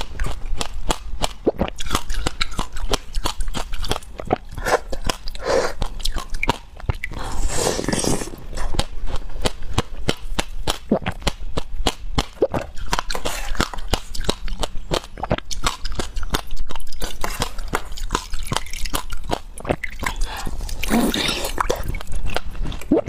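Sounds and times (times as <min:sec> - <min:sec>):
ice being chewed: 0:00.0 - 0:23.0.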